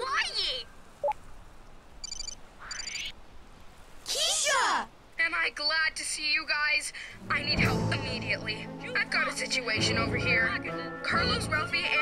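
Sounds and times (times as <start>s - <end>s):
electronic high beeps: 2.0s - 3.1s.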